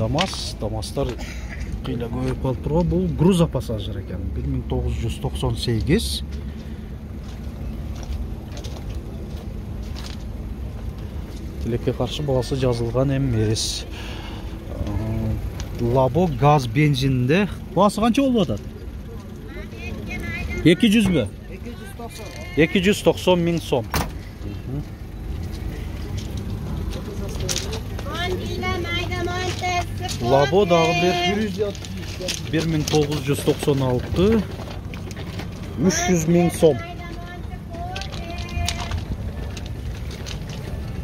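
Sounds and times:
people talking: 0.0s - 1.2s, 14.7s - 25.0s, 26.0s - 34.6s, 35.7s - 39.6s
steady low rumble: 0.0s - 41.0s
footsteps on gravel: 6.2s - 13.3s, 25.0s - 41.0s.

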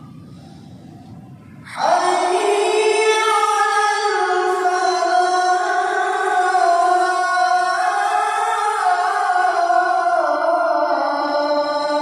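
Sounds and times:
call to prayer over loudspeakers: 0.0s - 12.0s
murmur of congregation: 0.0s - 12.0s.

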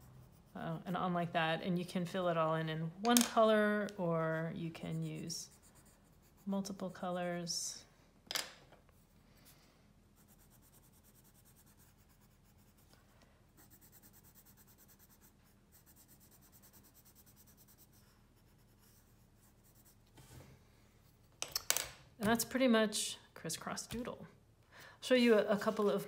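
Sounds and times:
colored pencil scribbling on paper: 4.7s - 6.9s, 10.2s - 13.0s, 13.6s - 20.0s.

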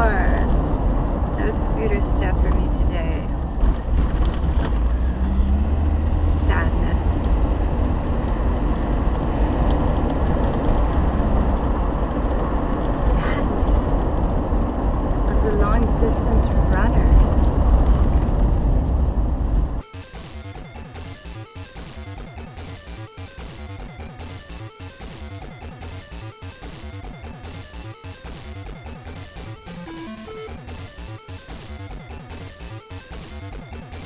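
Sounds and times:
car engine and road rumble: 0.0s - 21.1s.

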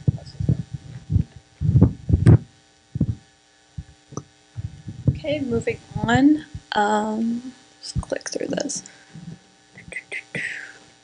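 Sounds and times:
microphone handling thumps: 0.0s - 6.8s, 8.0s - 10.0s.

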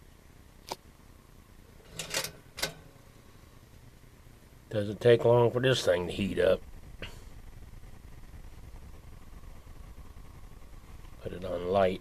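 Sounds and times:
toaster lever clicking and latching: 1.8s - 3.0s.

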